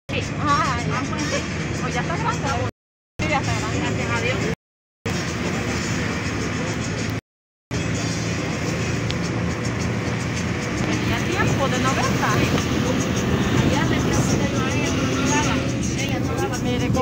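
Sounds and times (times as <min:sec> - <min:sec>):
vehicle engine and road noise: 0:00.1 - 0:17.0.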